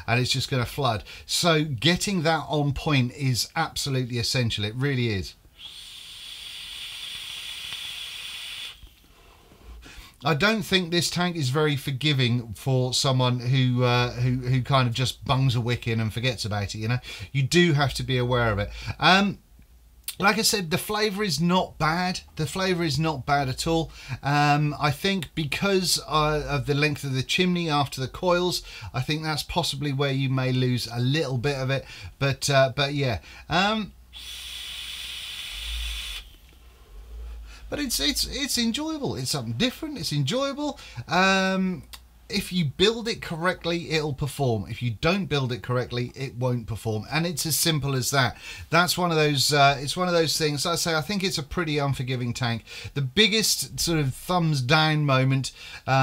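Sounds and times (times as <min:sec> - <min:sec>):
vape airflow hiss: 0:05.4 - 0:09.9, 0:34.1 - 0:37.8.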